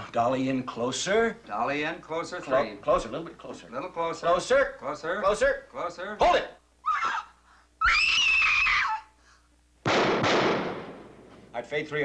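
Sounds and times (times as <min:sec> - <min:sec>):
woman screaming: 0:06.8 - 0:09.2
loud bang: 0:09.8 - 0:11.4.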